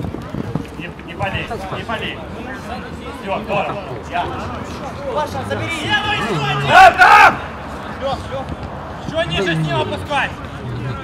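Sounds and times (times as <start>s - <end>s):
men shouting: 5.2s - 7.5s.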